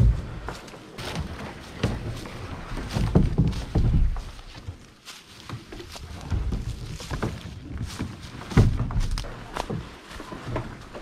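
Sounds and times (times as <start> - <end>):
heavy thuds: 0.0 - 4.8, 5.8 - 9.9
footsteps through undergrowth: 0.0 - 11.0
leaves and twigs crackling: 0.1 - 11.0.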